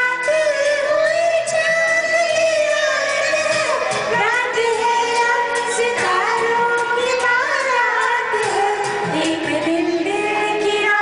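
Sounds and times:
karaoke backing track: 0:00.0 - 0:11.0
woman singing: 0:00.0 - 0:11.0.

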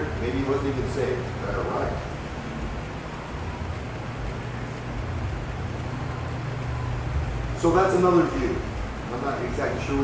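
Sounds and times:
low even hum: 0:00.0 - 0:10.0.

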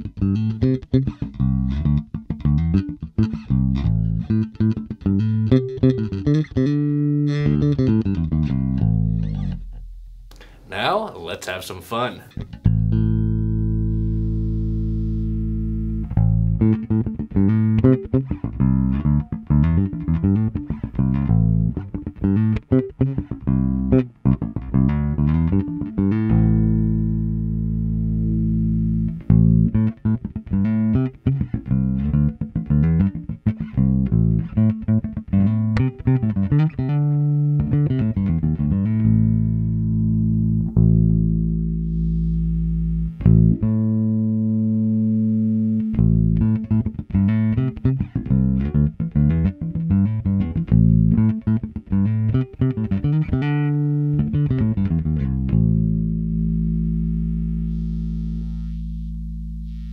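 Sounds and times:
electric bass plucked fingerstyle: 0:00.0 - 0:11.2, 0:12.3 - 0:59.9.

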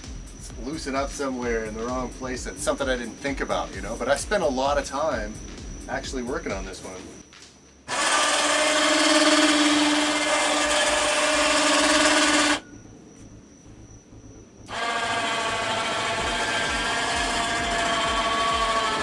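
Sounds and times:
electric winch motor whining: 0:07.9 - 0:12.7, 0:14.6 - 0:19.0.

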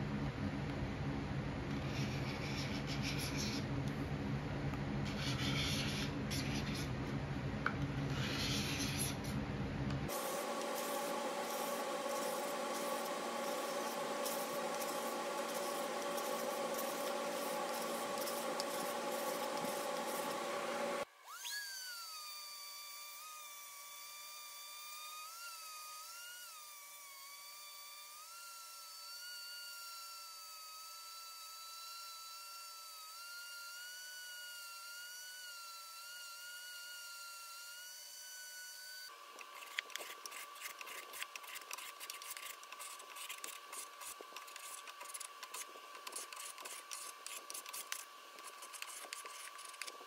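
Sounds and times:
orbital sander whining: 0:10.1 - 0:39.9
hand scraping paint from wood: 0:39.4 - 0:50.0.

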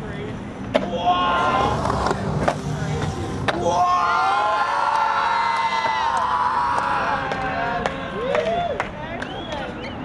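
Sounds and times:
skateboard wheels rolling on concrete: 0:00.0 - 0:10.0
onlookers cheering and whooping: 0:03.6 - 0:09.9
skateboard clacks: 0:04.8 - 0:09.7.

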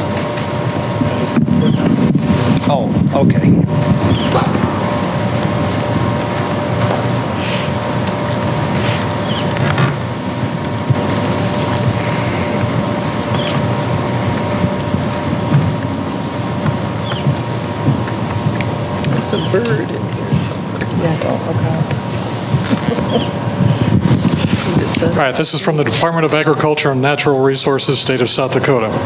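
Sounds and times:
faint hum tone: 0:00.0 - 0:27.9
low background rumble: 0:00.0 - 0:29.0.

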